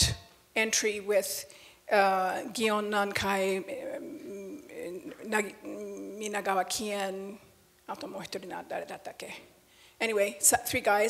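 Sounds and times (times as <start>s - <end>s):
woman speaking into a microphone: 0.0s - 11.0s.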